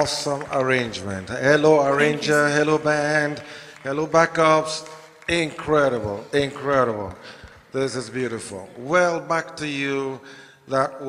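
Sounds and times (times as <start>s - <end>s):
man speaking over microphone: 0.0s - 11.0s.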